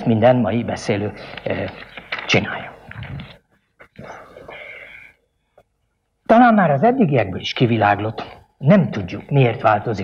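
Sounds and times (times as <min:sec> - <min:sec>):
paper rustling: 0:01.1 - 0:03.5.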